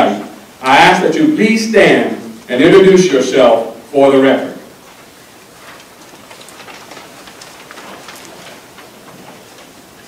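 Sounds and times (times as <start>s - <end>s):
steady hiss: 0.0s - 10.0s
small clicks and rustles: 4.8s - 10.0s.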